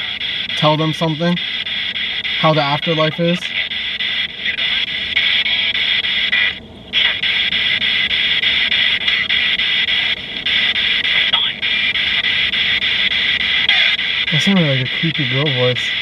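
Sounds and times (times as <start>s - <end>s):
radio static hiss: 0.0s - 16.0s.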